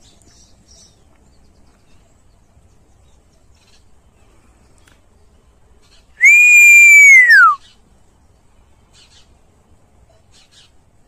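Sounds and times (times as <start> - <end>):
whistled bird call: 6.2 - 7.8.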